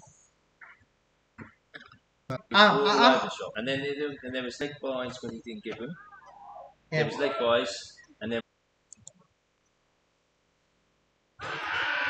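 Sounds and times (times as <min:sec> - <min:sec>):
person speaking: 0:02.3 - 0:06.0, 0:06.9 - 0:08.4.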